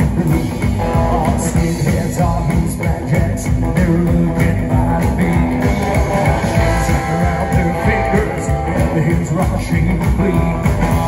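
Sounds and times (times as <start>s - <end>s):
electric guitar: 0.0s - 11.0s
person singing: 0.0s - 11.0s
steady drum beat: 0.0s - 11.0s.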